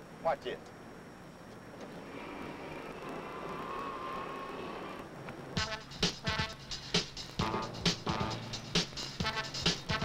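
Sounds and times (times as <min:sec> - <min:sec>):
electric motor whining: 0:01.8 - 0:05.6
music: 0:05.6 - 0:10.0.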